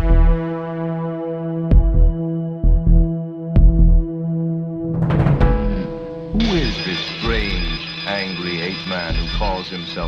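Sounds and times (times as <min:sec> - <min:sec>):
synthesizer drone: 0:00.0 - 0:10.0
low heartbeat-like double thump: 0:01.7 - 0:04.0, 0:04.8 - 0:06.6.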